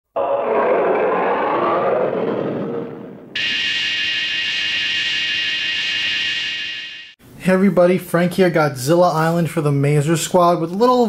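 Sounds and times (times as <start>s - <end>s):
steady high-pitched tone: 3.4s - 7.2s.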